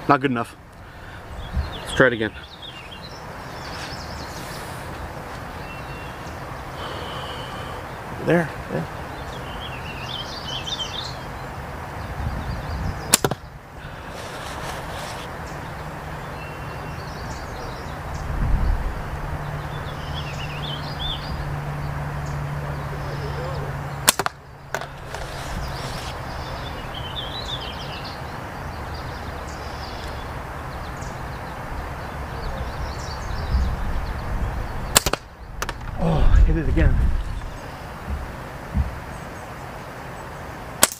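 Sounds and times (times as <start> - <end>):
slingshot bands snapping: 24.1 - 25.0.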